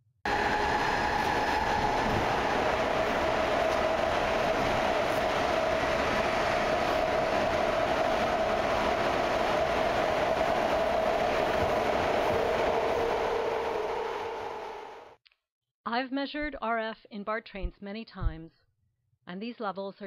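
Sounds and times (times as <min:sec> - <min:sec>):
train wheels running on track: 0:00.3 - 0:15.2.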